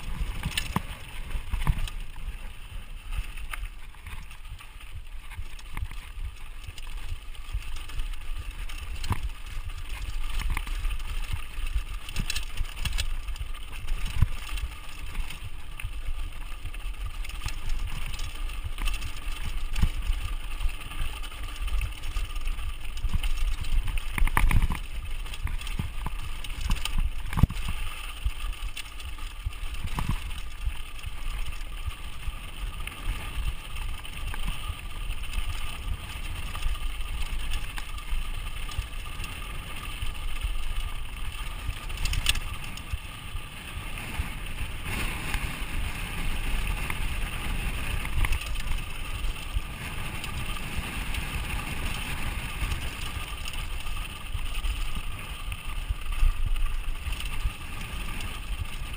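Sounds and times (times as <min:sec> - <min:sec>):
bike knocks and rattles: 0:00.0 - 0:39.3
bike tyres rumbling over dirt: 0:00.0 - 0:58.9.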